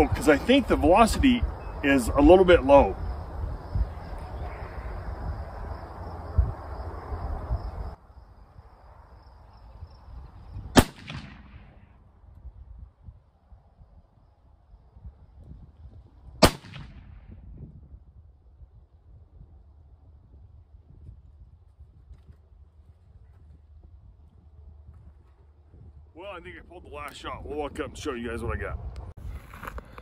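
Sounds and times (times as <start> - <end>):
rifle shots with echo: 10.8 - 11.8, 16.4 - 17.2.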